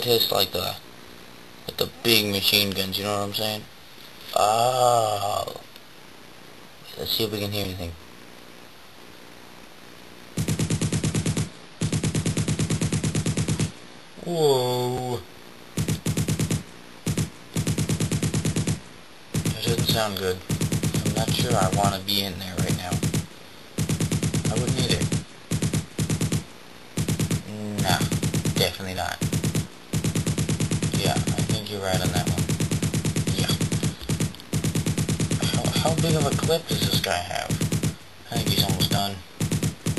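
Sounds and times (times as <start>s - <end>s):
heavy machine gun bursts: 19.4s - 39.9s.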